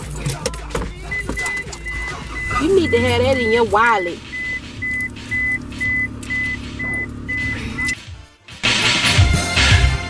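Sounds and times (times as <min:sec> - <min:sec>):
vehicle warning chime beeps: 0:00.0 - 0:08.0
low vehicle hum: 0:00.0 - 0:08.4.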